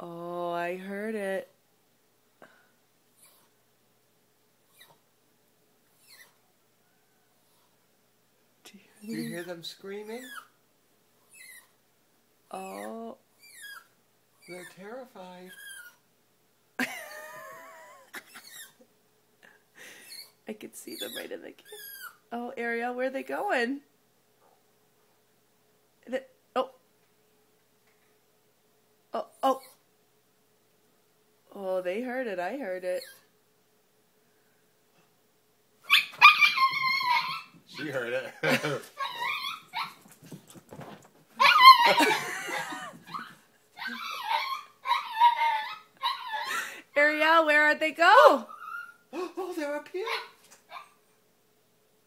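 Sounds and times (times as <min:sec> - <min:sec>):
dog whining: 0:04.7 - 0:05.0, 0:05.9 - 0:06.4, 0:09.0 - 0:09.5, 0:11.3 - 0:11.8, 0:12.5 - 0:14.8, 0:15.5 - 0:16.0, 0:18.2 - 0:18.8, 0:20.0 - 0:22.2, 0:35.9 - 0:40.2, 0:41.4 - 0:46.7, 0:48.3 - 0:49.2, 0:50.0 - 0:51.0
small dog howling: 0:35.9 - 0:38.1, 0:39.0 - 0:40.0, 0:41.4 - 0:46.5.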